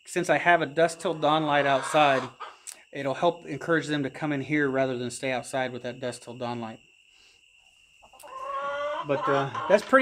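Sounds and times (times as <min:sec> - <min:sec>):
chicken call: 0:01.4 - 0:02.7, 0:08.1 - 0:10.0.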